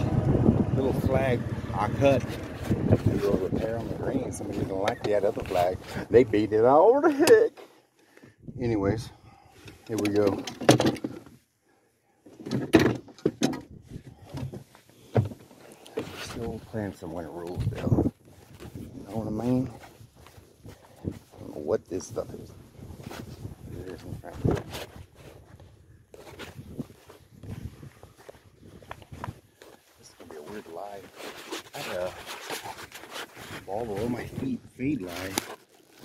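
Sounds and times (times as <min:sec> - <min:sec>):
footsteps on dry grass: 0:17.8 - 0:21.7, 0:24.3 - 0:34.2.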